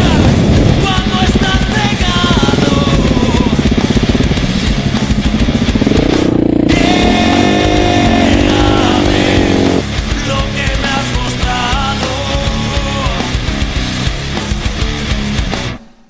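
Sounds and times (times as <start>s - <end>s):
motorcycle engine revving: 0.0s - 10.2s
rock music: 0.0s - 16.0s.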